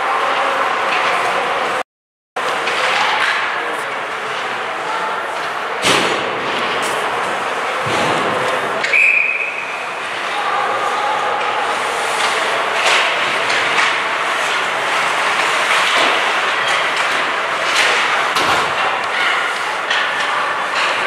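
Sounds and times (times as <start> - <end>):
skates rushing on ice: 2.4 - 21.0
hockey sticks and puck knocks: 12.1 - 21.0.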